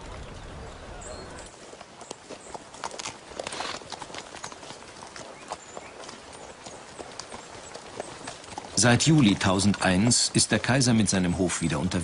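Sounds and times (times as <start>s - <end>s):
horse hooves clip-clopping: 0.0s - 12.0s.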